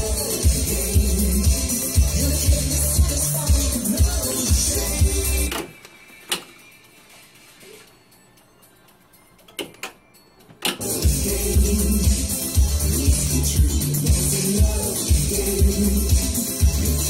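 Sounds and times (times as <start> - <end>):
music from tape deck: 0.0 - 17.0.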